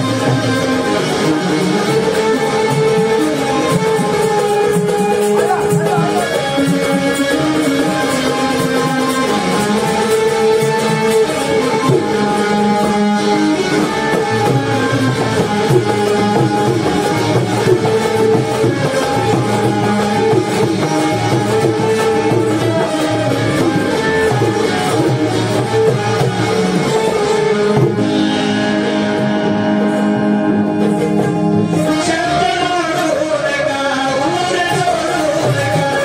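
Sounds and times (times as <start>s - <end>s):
hand drums: 0.0s - 33.5s, 34.1s - 36.0s
harmonium chords: 0.0s - 36.0s
keyed banjo plucked notes: 0.0s - 36.0s.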